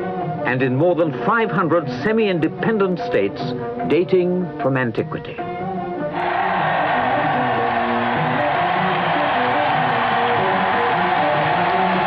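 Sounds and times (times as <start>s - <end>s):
music with stepwise melody: 0.0s - 12.0s
din of large crowd: 6.1s - 12.0s.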